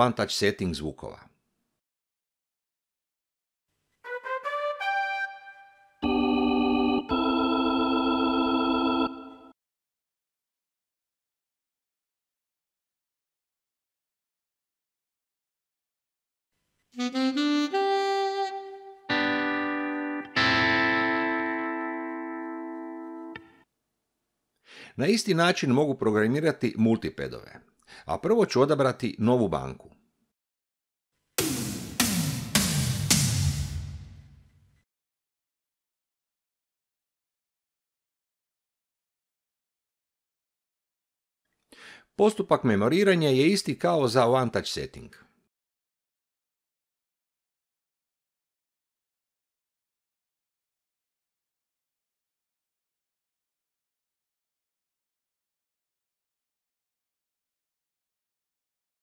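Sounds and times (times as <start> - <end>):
keyboard notes and chords: 4.1 - 9.5, 17.0 - 23.6
electronic synth tom hits: 31.4 - 34.4.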